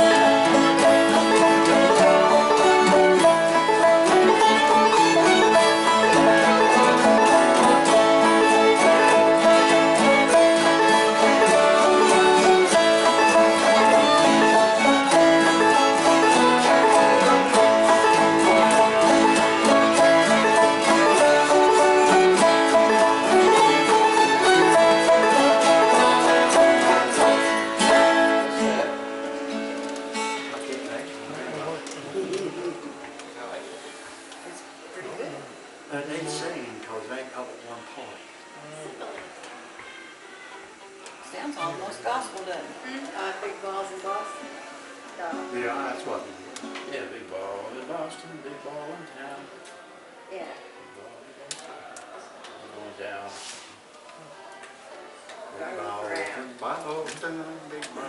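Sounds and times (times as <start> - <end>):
fiddle bowing melody: 0.0 - 31.8, 40.5 - 42.2
banjo and plucked strings: 0.0 - 33.4, 39.3 - 42.8.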